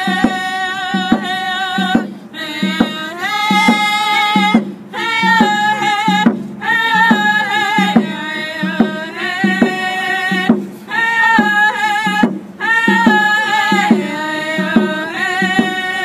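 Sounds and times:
hand drum beating: 0.0s - 16.0s
women singing in unison: 0.0s - 16.0s.

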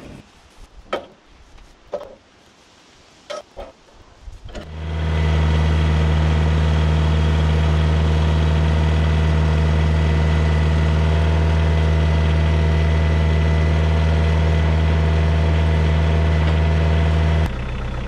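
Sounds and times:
tractor engine running steadily: 4.4s - 18.0s.

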